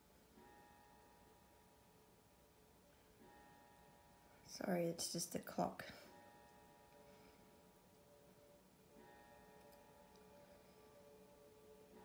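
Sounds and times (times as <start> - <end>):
faint clock ticks: 0.0 - 12.0
clock chime ringing tones: 0.3 - 2.2, 2.9 - 12.0.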